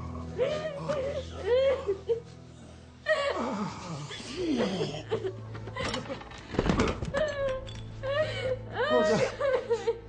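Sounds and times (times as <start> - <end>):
person crying: 7.2 - 10.0.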